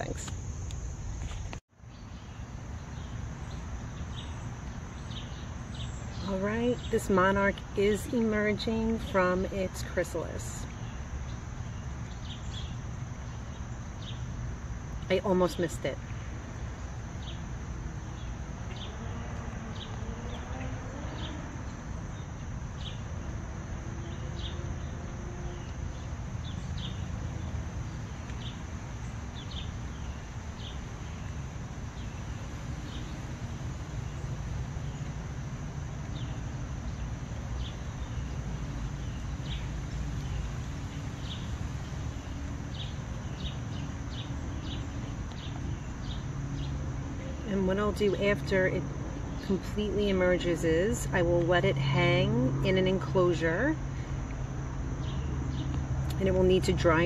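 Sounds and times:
insect drone: 0.0 - 57.0
short insect chirps: 10.6 - 47.2.

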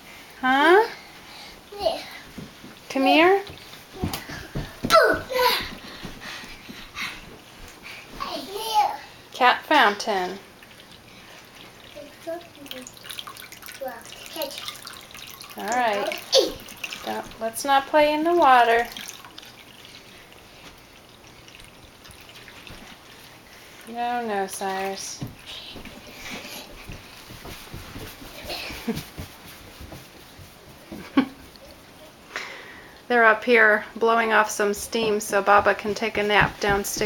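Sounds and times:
young child's wordless voice: 1.7 - 2.2, 4.0 - 5.8, 8.2 - 9.2, 11.9 - 13.0, 13.8 - 14.8, 15.8 - 16.7
water trickling in fountain: 9.4 - 25.1
bare feet running on carpet: 25.5 - 31.5, 34.8 - 37.0.

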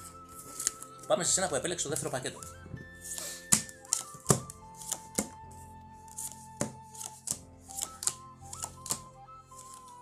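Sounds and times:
soft background music: 0.0 - 10.0
cards snapping on table: 3.1 - 5.4, 6.2 - 9.8.

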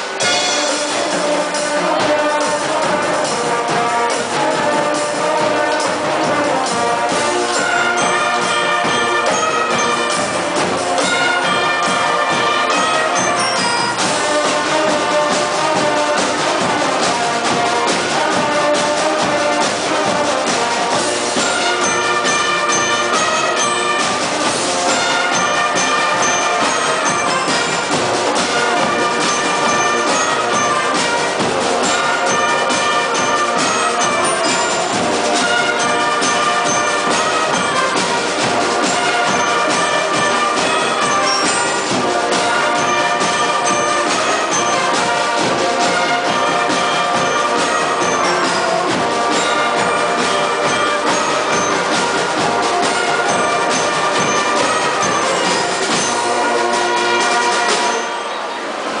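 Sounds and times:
wind band playing chords: 0.0 - 59.0.

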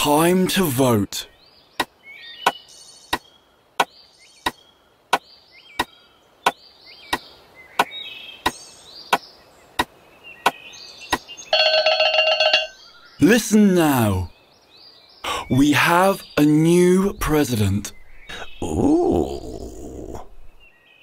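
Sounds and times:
faint chirping: 0.8 - 21.0
sharp dry knocks: 1.8 - 11.3.

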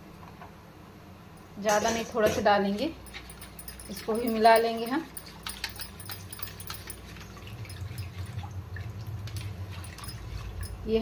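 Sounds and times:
whisk clicking against pot: 3.1 - 7.1
whisk sloshing liquid: 3.1 - 10.8.

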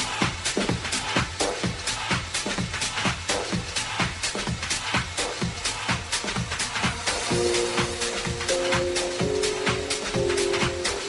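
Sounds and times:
hi-hats ticking: 0.0 - 11.0
techno kick drum: 0.0 - 11.0.

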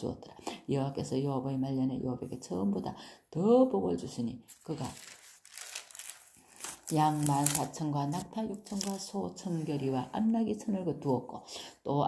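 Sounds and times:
paper page turning: 4.5 - 9.8.

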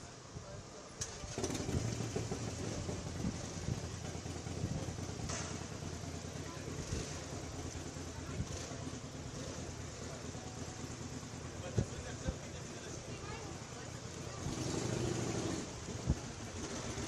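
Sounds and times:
crowd murmur: 0.0 - 17.0
engine idling: 0.0 - 17.0.

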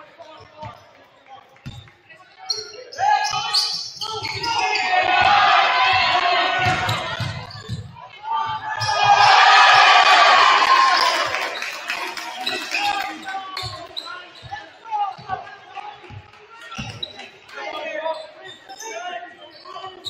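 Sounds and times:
voices shouting and cheering: 2.6 - 20.0.

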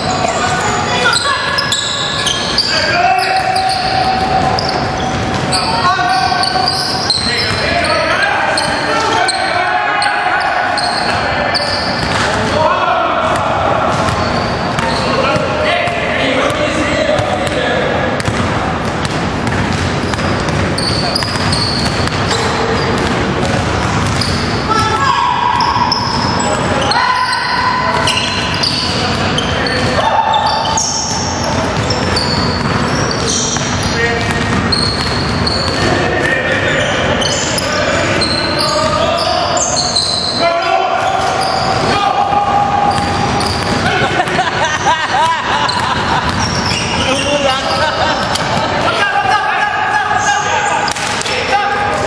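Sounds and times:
players calling out: 0.0 - 52.0
sneakers squeaking: 0.0 - 52.0
basketball bouncing on hardwood: 18.2 - 24.4, 31.8 - 36.0.

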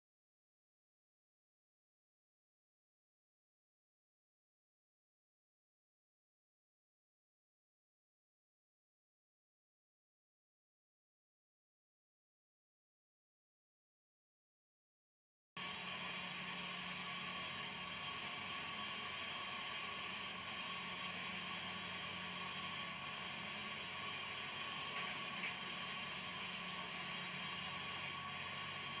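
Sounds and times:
videotape hiss and hum: 15.6 - 29.0.

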